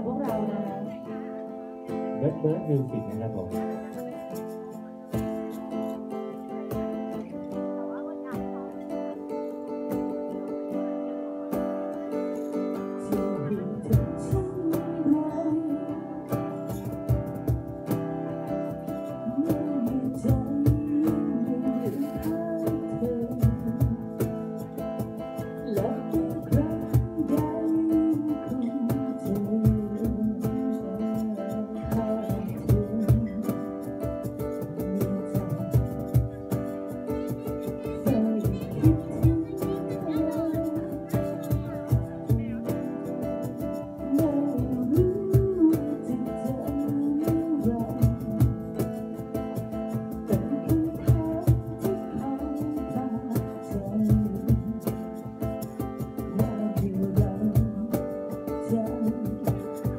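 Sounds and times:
woman singing into microphone: 0.0s - 2.2s, 12.1s - 17.6s, 18.3s - 59.9s
acoustic guitar strumming: 0.0s - 59.9s.

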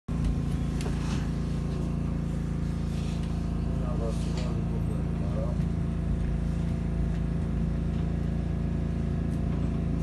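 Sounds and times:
electric train hum and rumble: 0.1s - 10.0s.

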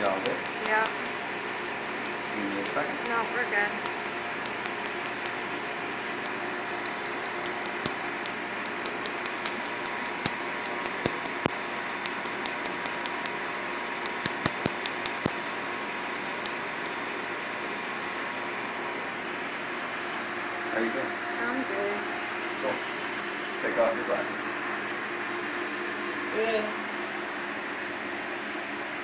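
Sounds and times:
laser snapping clicks: 0.0s - 18.4s
steady machine hum: 0.0s - 29.0s.

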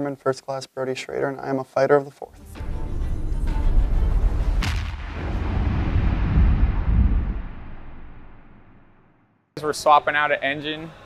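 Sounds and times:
cinematic boom rumble: 3.2s - 9.4s
sharp crack: 4.6s - 9.3s.

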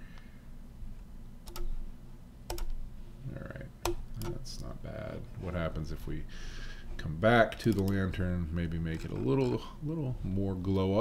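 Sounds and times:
low steady hum: 0.0s - 11.0s
computer mouse clicking: 1.4s - 1.8s, 2.5s - 2.8s, 3.8s - 4.4s, 7.6s - 8.0s.

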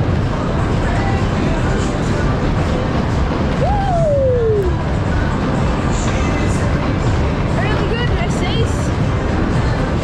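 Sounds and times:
fairground ride rumble and rush: 0.0s - 10.0s.

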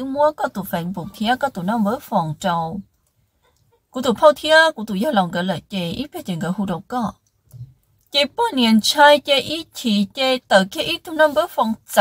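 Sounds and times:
narrator speaking: 0.0s - 2.8s, 8.2s - 12.0s.

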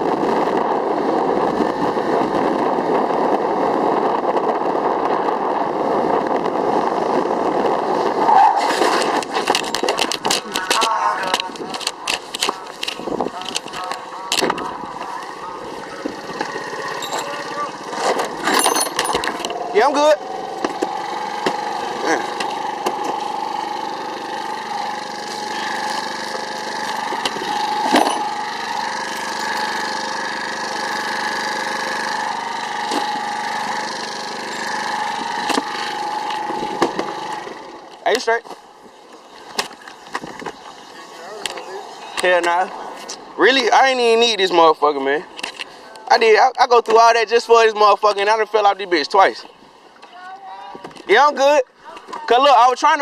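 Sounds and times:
small petrol engine running: 0.0s - 49.2s
camera being jostled: 8.7s - 15.2s.

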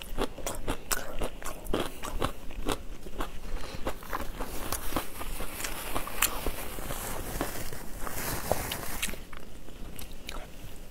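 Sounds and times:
person biting and chewing food: 0.0s - 7.8s.

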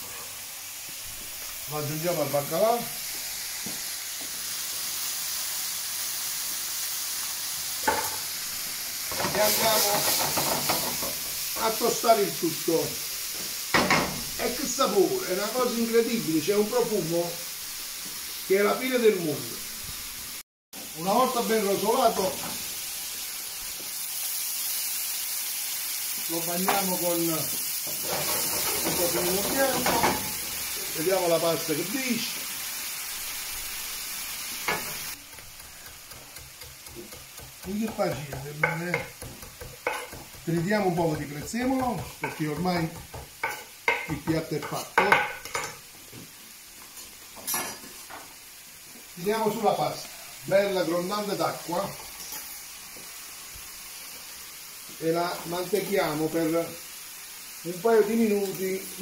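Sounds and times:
frying pan sizzling: 0.0s - 59.0s
faint tongs tapping: 34.7s - 40.5s.

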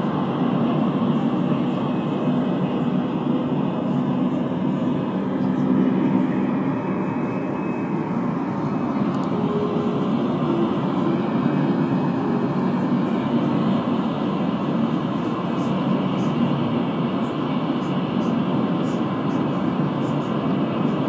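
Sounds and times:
steady rushing noise: 0.0s - 21.0s.

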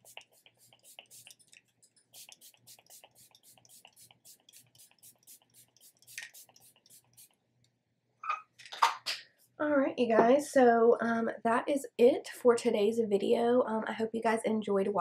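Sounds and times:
spray bottle spritzes: 0.0s - 7.4s.

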